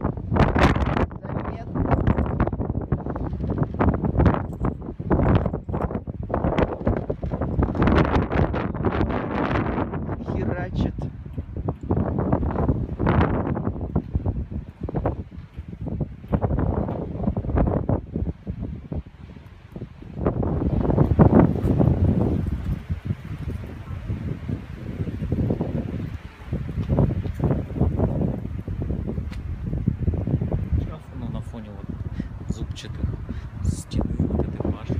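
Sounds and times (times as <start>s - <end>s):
wind buffeting microphone: 0.0s - 34.9s.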